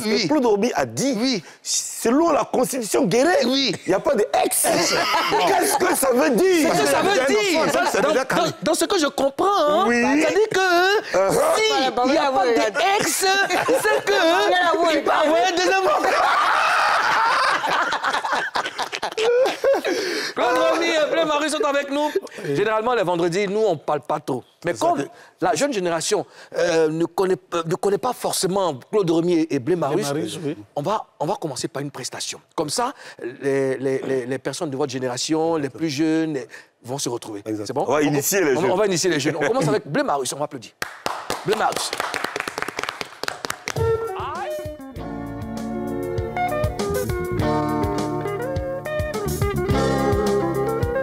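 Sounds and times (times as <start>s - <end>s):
people laughing heartily: 4.7s - 8.6s, 12.8s - 21.3s
hands clapping in applause: 40.8s - 44.1s
music: 43.6s - 51.0s.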